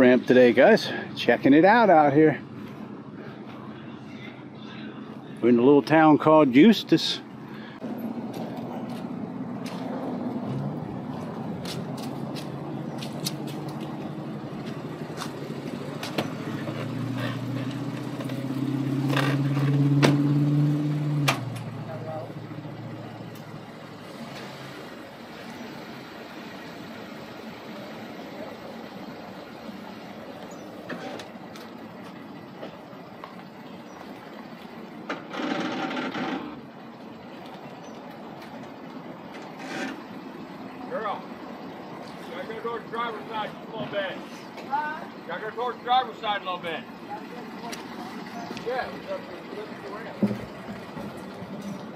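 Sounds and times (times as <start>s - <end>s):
outdoor background noise: 0.0s - 51.9s
pickup truck engine running: 7.2s - 51.9s.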